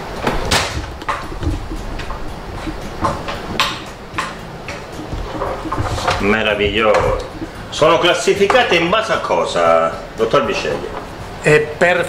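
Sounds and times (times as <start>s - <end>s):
wood knocking on wood: 0.2s - 7.8s.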